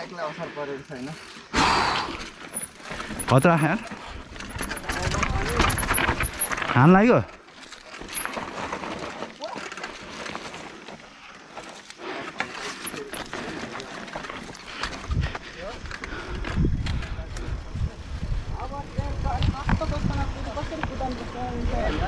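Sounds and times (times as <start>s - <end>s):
bike tyres crunching on dirt: 0.0s - 22.0s
bike frame rattling: 2.1s - 21.7s
wind buffeting microphone: 14.8s - 22.0s.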